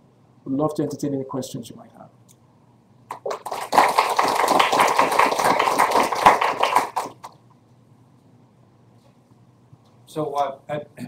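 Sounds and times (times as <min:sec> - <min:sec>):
audience applauding: 0:03.1 - 0:07.4.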